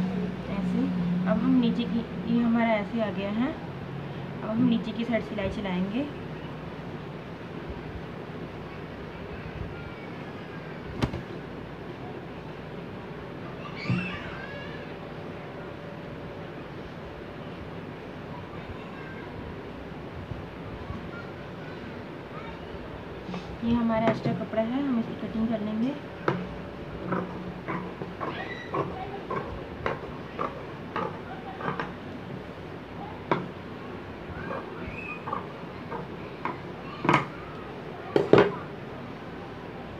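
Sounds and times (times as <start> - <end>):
steady background noise: 0.0 - 39.9.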